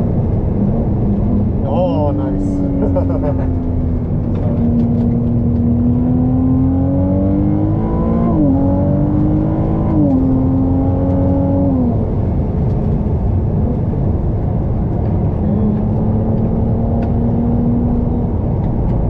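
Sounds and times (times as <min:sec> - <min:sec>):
car engine accelerating: 0:00.0 - 0:19.0
road and wind rumble: 0:00.0 - 0:19.0.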